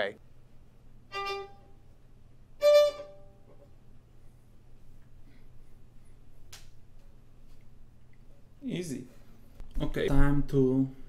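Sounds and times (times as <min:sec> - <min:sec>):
violin bowed notes: 0:01.1 - 0:01.8, 0:02.6 - 0:03.6.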